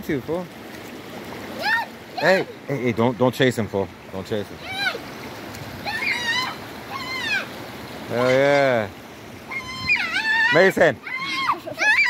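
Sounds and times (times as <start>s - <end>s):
high-pitched cries: 1.6s - 2.4s, 5.8s - 7.5s, 9.4s - 12.0s.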